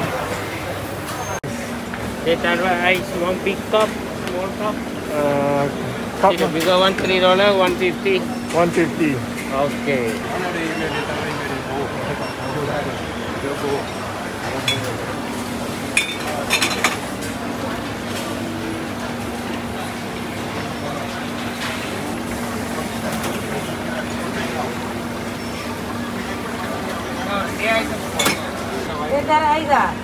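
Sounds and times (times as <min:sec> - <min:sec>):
background voices and chatter: 0:00.0 - 0:30.0
cups or utensils clinking: 0:15.9 - 0:17.1, 0:28.2 - 0:28.6.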